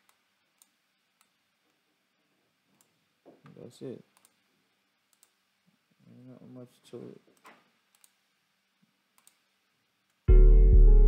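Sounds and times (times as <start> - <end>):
computer mouse clicks: 0.0 - 1.4, 4.1 - 4.4, 5.1 - 5.4, 7.4 - 8.2, 9.2 - 9.4.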